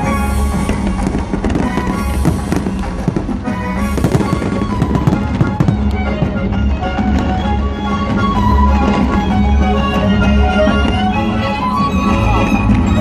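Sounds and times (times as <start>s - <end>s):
fireworks bursting and crackling: 0.0s - 9.3s
loud music: 0.0s - 13.0s.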